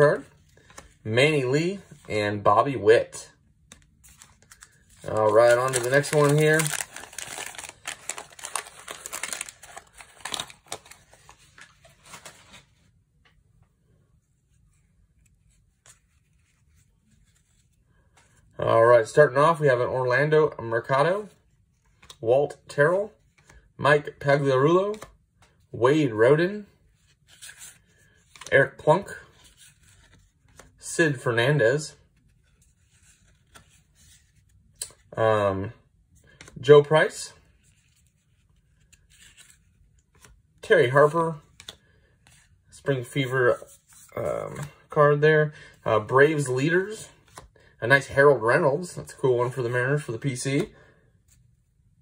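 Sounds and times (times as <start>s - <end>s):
wax paper wrapper crinkling: 3.9s - 12.7s.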